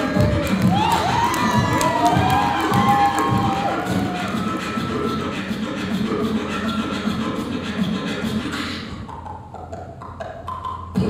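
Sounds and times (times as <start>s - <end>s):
audience cheering and shouting: 0.0s - 5.5s
beatboxing through microphone: 0.0s - 11.0s.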